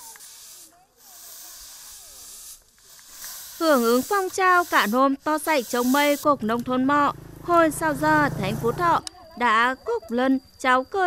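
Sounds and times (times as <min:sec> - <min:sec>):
brooms sweeping concrete: 0:00.0 - 0:06.4.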